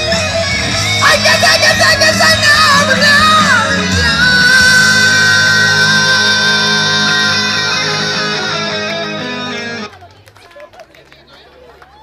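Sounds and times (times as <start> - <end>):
faint crowd noise: 0.0 - 12.0.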